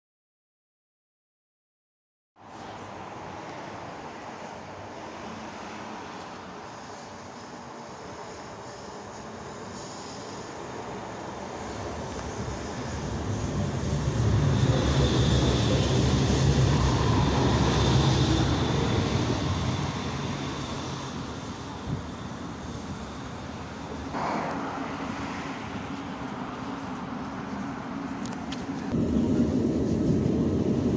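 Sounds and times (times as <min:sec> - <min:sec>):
tram braking and motor whine: 0:05.0 - 0:30.9.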